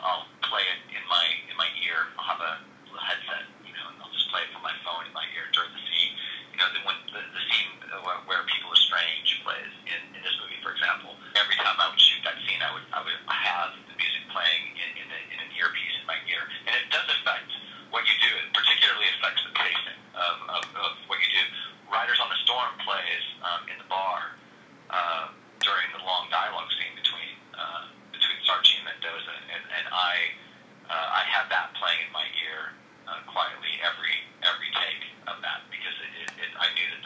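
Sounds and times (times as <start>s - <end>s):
person talking over telephone: 0.0s - 37.0s.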